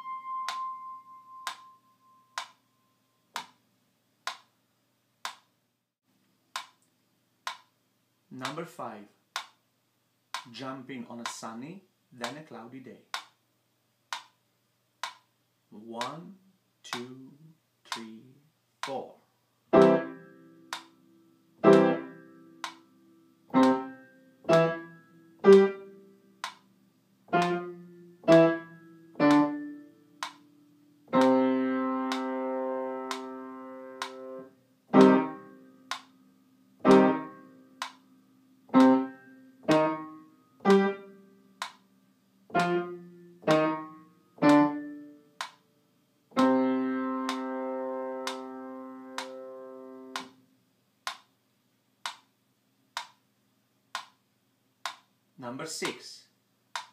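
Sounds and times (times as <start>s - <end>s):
piano playing detached chords: 0.0s - 2.4s, 19.7s - 20.9s, 21.6s - 22.8s, 23.5s - 26.0s, 27.3s - 30.0s, 31.1s - 35.9s, 36.8s - 37.8s, 38.7s - 41.2s, 42.5s - 45.2s, 46.3s - 50.3s.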